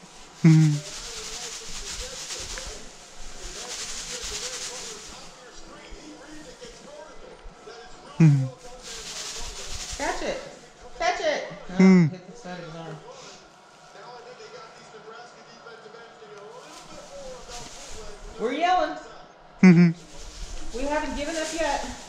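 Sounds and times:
faint commentary: 0:00.0 - 0:22.0
short loud voice: 0:00.4 - 0:00.8, 0:08.2 - 0:08.5, 0:19.6 - 0:20.0.

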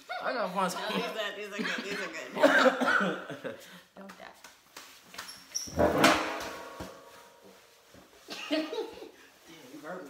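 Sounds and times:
sharp knock: 0:05.8 - 0:07.5.

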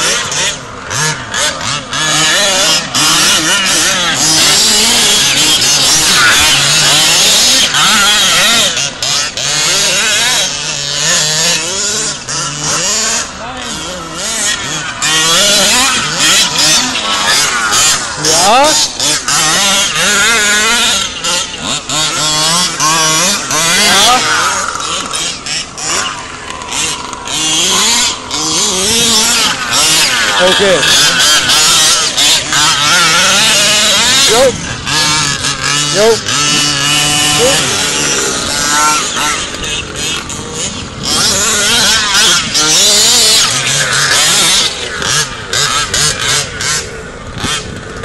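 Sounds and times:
small two-stroke engine revving: 0:00.0 - 0:48.0.

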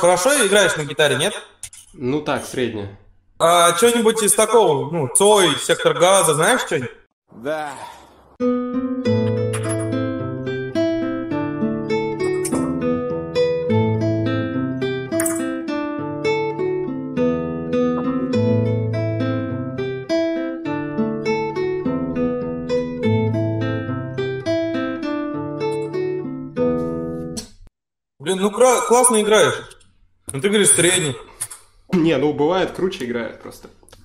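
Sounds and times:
classical guitar fingerstyle: 0:08.6 - 0:27.4.

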